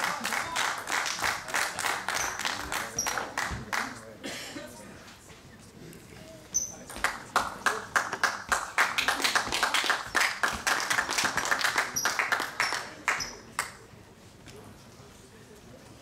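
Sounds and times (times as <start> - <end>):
crowd clapping: 0.0 - 4.0, 7.0 - 13.8
short high squeaks: 2.1 - 3.2, 6.5 - 6.9.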